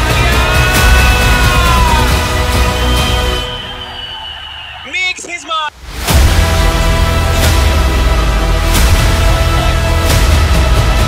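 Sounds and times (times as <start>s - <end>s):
background music: 0.0s - 4.8s, 5.8s - 11.0s.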